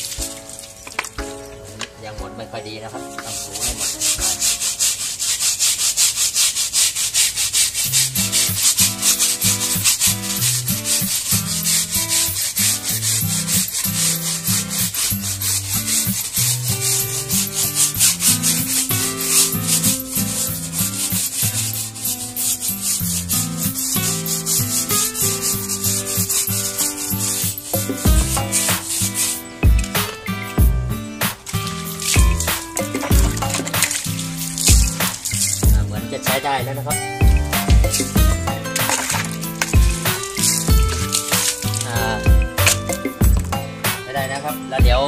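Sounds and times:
background music: 0:00.0 - 0:05.4, 0:07.8 - 0:45.0
brush scrubbing rubber tyre: 0:00.0 - 0:45.0.

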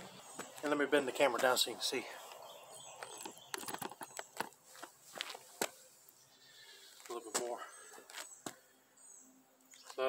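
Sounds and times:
shoes shifting on concrete: 0:00.0 - 0:06.0, 0:06.8 - 0:08.7.

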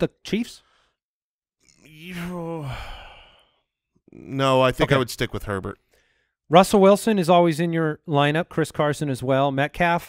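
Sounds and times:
man sighing hmm: 0:01.8 - 0:03.5.

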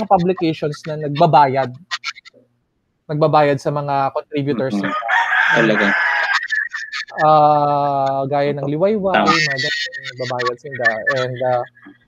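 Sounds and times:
rooster crowing: 0:04.8 - 0:06.7.

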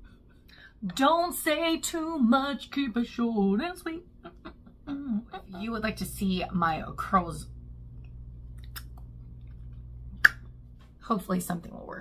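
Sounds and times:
steady low hum: 0:00.0 - 0:12.0
mouth clicks and lip sounds: 0:08.6 - 0:09.6, 0:10.2 - 0:10.5.

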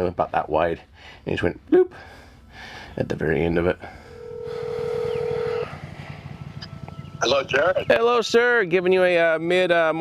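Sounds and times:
phone ringing tone: 0:03.9 - 0:05.9.

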